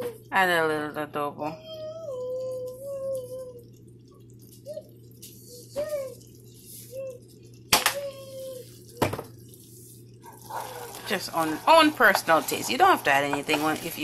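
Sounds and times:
sauce bubbling in a frying pan: 2.2s - 14.0s.

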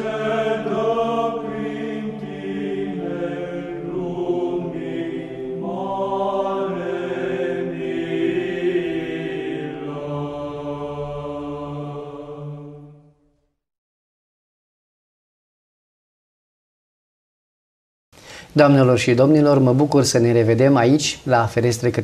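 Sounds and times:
voices singing church chant: 0.0s - 13.2s.

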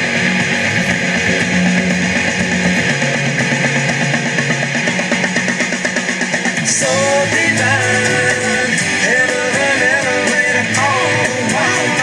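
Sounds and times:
electric bass guitar: 0.0s - 12.0s
rock music: 0.0s - 12.0s.

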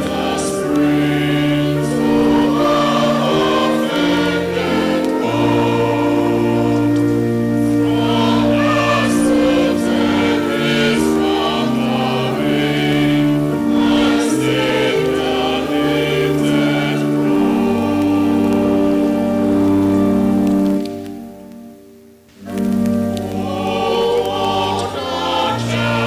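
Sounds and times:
choir singing a hymn: 0.0s - 21.0s, 22.4s - 26.0s.

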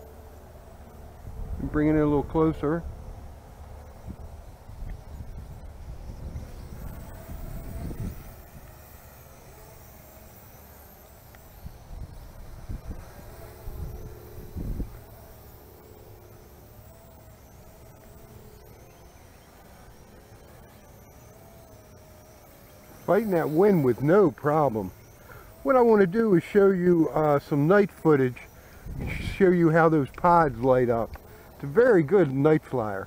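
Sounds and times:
quadcopter motors whining: 0.0s - 33.0s
wind buffeting microphone: 1.2s - 3.4s, 4.0s - 8.8s, 11.6s - 15.1s, 28.8s - 31.2s.

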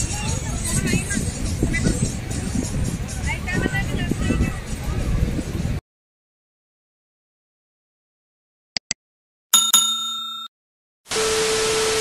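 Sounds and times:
bell chiming: 9.6s - 10.5s.

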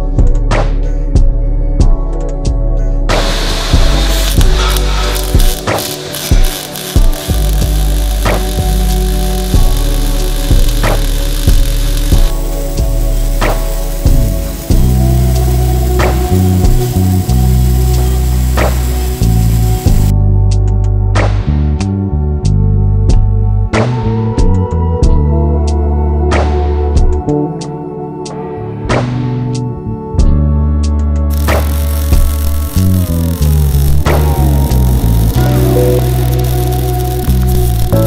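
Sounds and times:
background music with steady beat: 0.0s - 38.0s
welding arc hissing and crackling: 3.1s - 20.1s, 31.3s - 38.0s.

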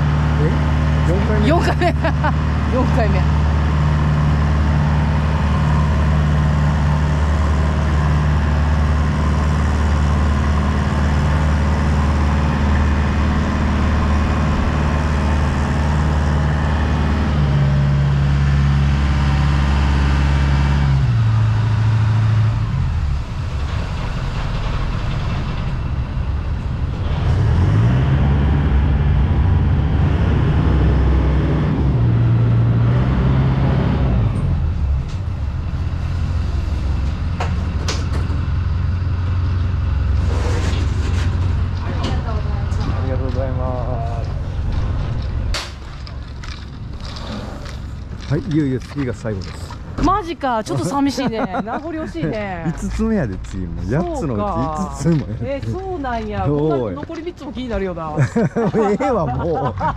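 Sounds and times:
ferry engine humming: 0.0s - 59.9s.

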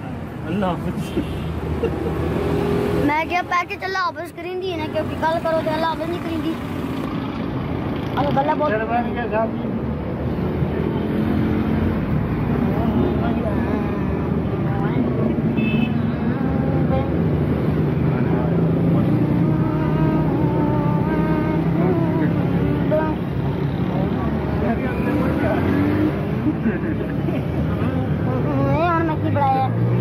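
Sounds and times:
people talking: 3.0s - 6.7s.

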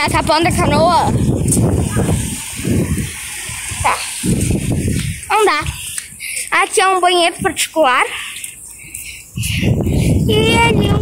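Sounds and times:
wind buffeting microphone: 0.0s - 7.8s, 8.8s - 11.0s
person speaking: 5.2s - 8.4s.

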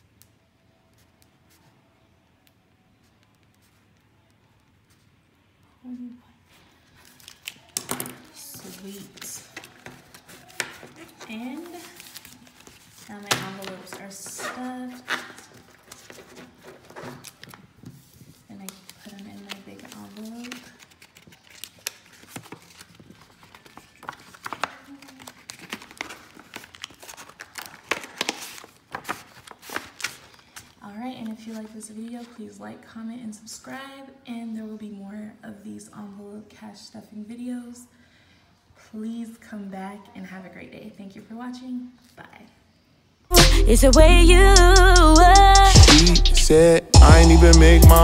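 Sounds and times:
paper rustling: 6.8s - 32.4s
plastic sleeves crinkling: 6.8s - 32.4s.

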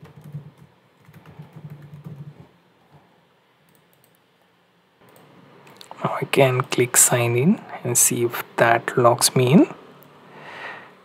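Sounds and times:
computer keyboard typing: 0.0s - 2.4s, 3.7s - 4.2s.

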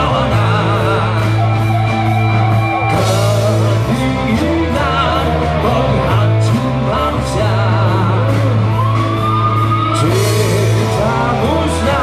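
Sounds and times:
live rock band playing: 0.0s - 12.0s
man singing: 0.0s - 12.0s.

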